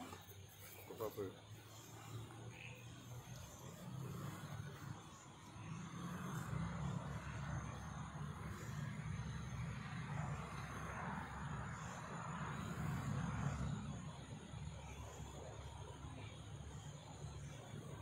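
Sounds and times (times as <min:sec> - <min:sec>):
road traffic rumble with hiss: 0:00.0 - 0:18.0.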